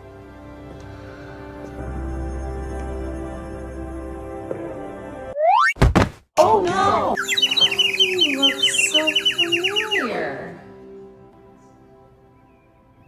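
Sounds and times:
background music: 0.0s - 5.4s, 6.4s - 13.0s
loud thunk: 5.8s - 6.2s
high tweeting bird chirps: 7.2s - 10.4s.

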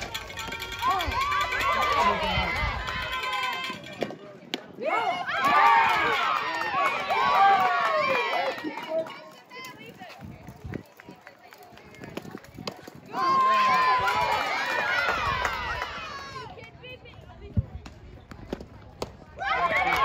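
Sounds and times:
girls shouting and cheering: 0.4s - 3.9s, 4.8s - 10.2s, 13.1s - 17.0s, 19.4s - 20.0s.

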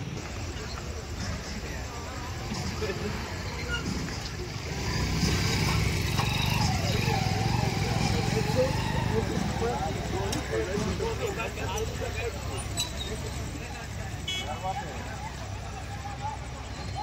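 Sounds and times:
construction machinery engine rumble: 0.0s - 17.0s
crowd talking: 0.0s - 17.0s.

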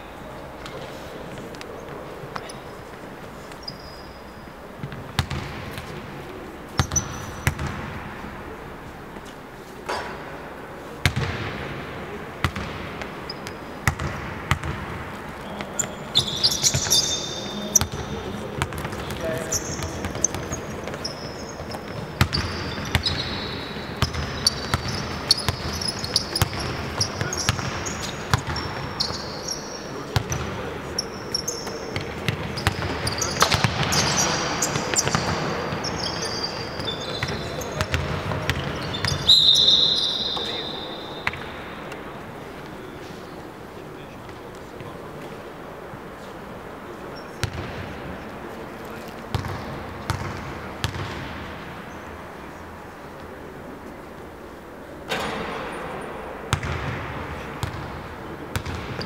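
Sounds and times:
sneaker squeaks: 0.6s - 6.0s, 6.7s - 7.8s, 12.4s - 14.8s, 15.4s - 41.5s, 47.1s - 47.7s, 49.1s - 51.2s, 58.5s - 59.0s.

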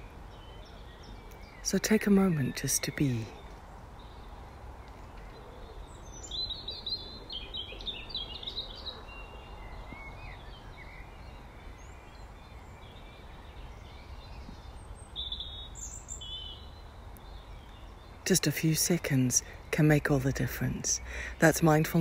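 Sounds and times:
songbird chirping: 0.0s - 22.0s.

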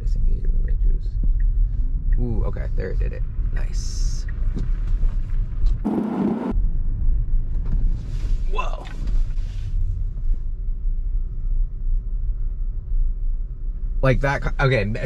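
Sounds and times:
road and tyre rumble in car: 0.0s - 15.0s.

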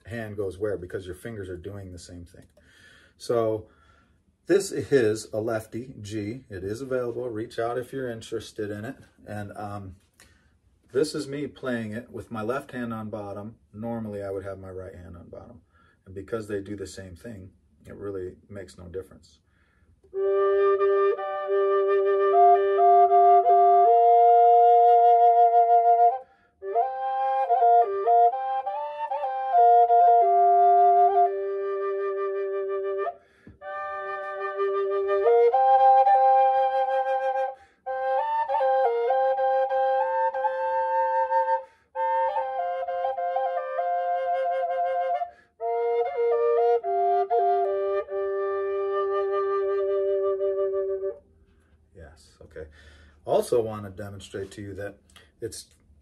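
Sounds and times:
drone flute melody: 20.1s - 51.3s.

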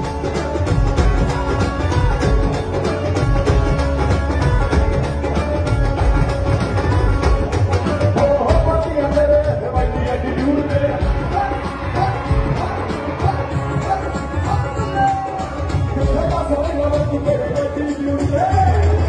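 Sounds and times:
pop band with drums and keyboard: 0.0s - 19.0s
man singing into a microphone: 7.9s - 19.0s.

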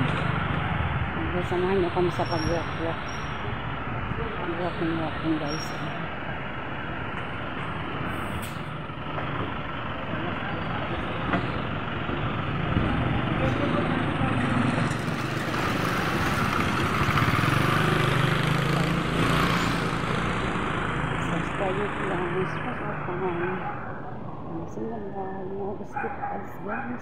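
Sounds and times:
street traffic: 0.0s - 27.0s.

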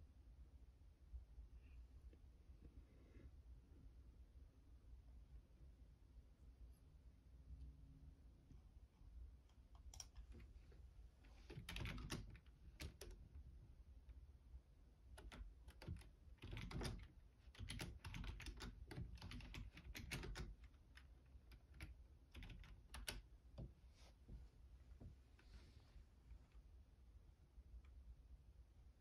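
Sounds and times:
keyboard typing clicks: 11.5s - 13.2s, 15.2s - 20.6s.

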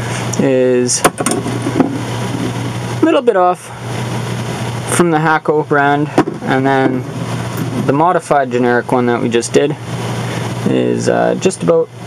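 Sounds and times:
low machine hum with hiss: 0.0s - 12.0s.

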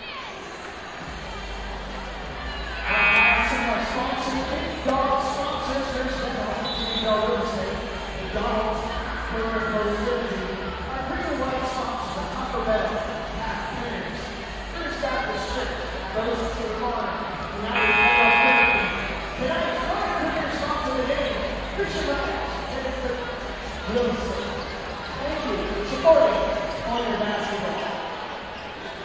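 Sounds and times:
indistinct voices: 0.0s - 6.0s, 13.1s - 27.2s
gym background noise: 0.0s - 29.0s
scoreboard buzzer: 2.9s - 3.7s, 17.7s - 19.2s.

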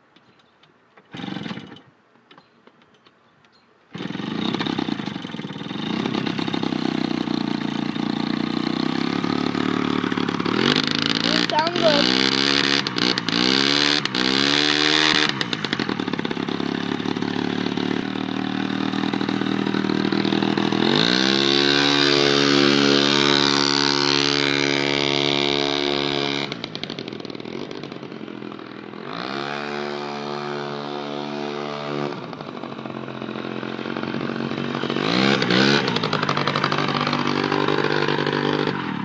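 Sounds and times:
small two-stroke engine revving: 1.1s - 1.8s, 3.9s - 39.0s.

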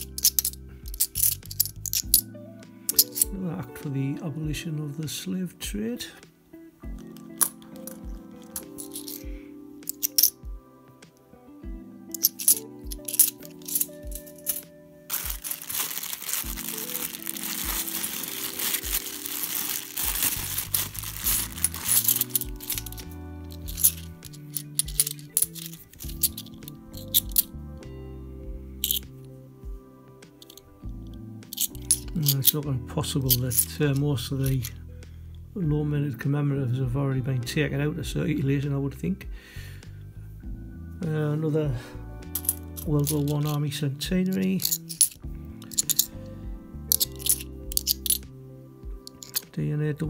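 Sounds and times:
coins clinking: 0.0s - 2.3s, 2.9s - 3.3s, 7.1s - 10.4s, 12.1s - 27.5s, 28.8s - 29.1s, 30.4s - 30.7s, 31.5s - 32.6s, 33.2s - 33.8s, 42.3s - 43.6s, 44.2s - 46.2s, 46.9s - 48.2s, 49.0s - 49.5s
background music with steady beat: 0.0s - 50.0s
plastic bag crinkling: 12.2s - 27.5s, 49.1s - 49.4s.

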